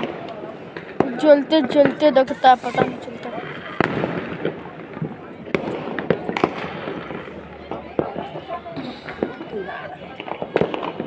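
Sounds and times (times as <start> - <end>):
firecrackers cracking: 0.0 - 11.0.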